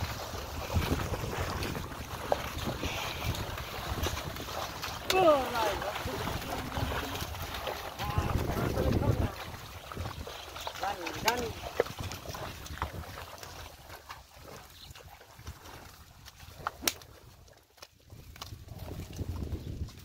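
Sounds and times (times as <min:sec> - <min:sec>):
cart wheels and hooves in mud: 0:00.0 - 0:20.0.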